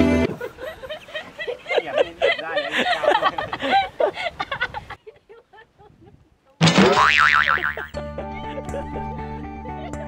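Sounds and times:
cartoon boing sound effect: 6.6s - 7.9s.

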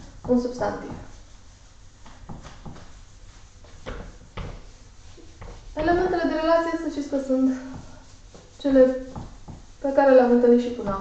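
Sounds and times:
eraser wiping whiteboard: 0.0s - 11.0s
eraser knocking on board: 2.0s - 3.0s, 3.6s - 4.7s, 9.1s - 9.7s.

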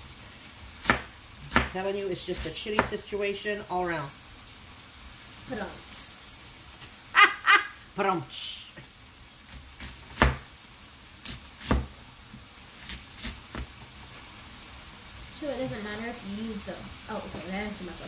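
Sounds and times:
knife chopping cabbage on board: 0.8s - 3.0s, 9.5s - 10.5s, 11.2s - 12.0s, 12.8s - 13.8s
person laughing: 7.1s - 7.8s.

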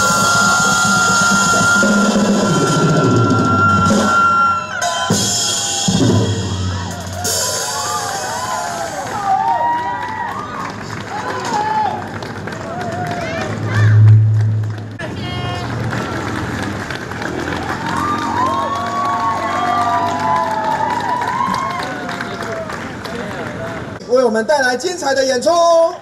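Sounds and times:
crowd calling out and cheering: 0.0s - 24.7s
deep steady low tone: 13.8s - 14.9s.

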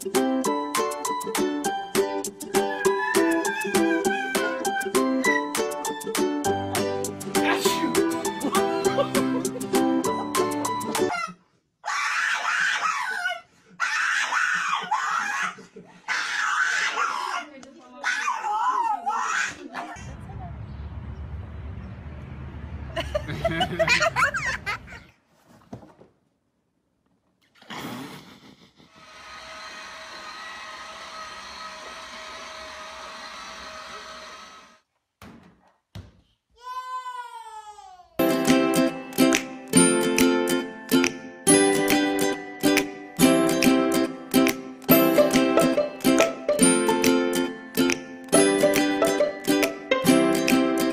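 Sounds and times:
ukulele tune: 0.0s - 11.1s, 38.2s - 50.9s
small dog screaming: 2.6s - 5.6s, 11.1s - 19.9s.

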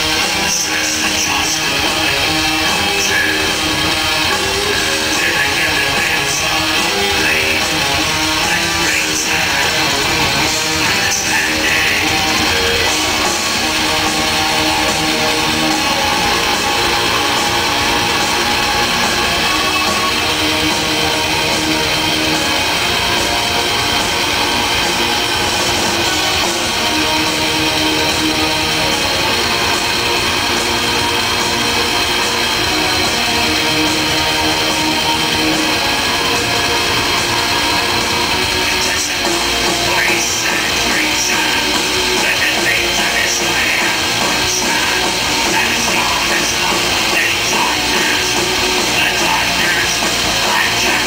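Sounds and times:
distorted electric guitars: 0.0s - 51.0s
drums: 0.0s - 51.0s.

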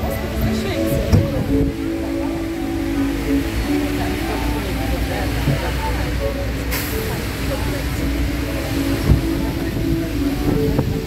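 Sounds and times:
low rumble of traffic: 0.0s - 11.0s
people's voices: 0.0s - 11.0s
splashing fountain water: 0.0s - 11.0s.

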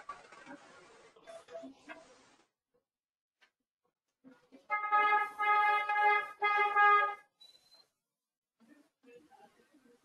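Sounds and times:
horn blasts: 4.7s - 7.3s.

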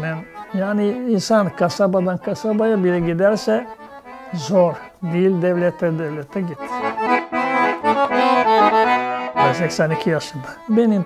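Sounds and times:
piano accordion melody: 0.0s - 11.0s.

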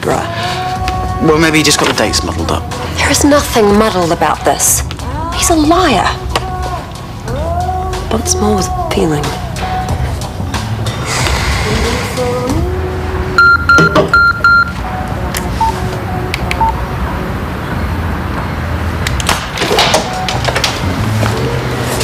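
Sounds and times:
soft background music: 0.0s - 22.0s
phone alert beeps: 13.4s - 14.8s.

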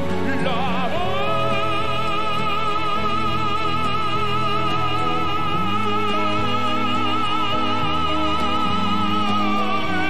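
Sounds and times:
operatic tenor singing: 0.0s - 10.0s.

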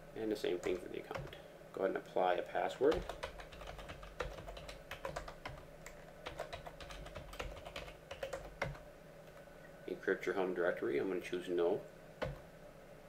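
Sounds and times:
computer keyboard typing: 0.6s - 1.4s, 2.9s - 8.8s, 12.2s - 12.4s.

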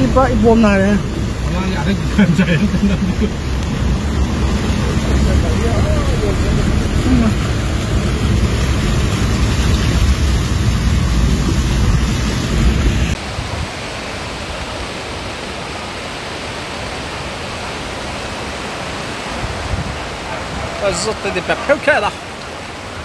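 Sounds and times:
floodwater rushing: 0.0s - 23.0s.

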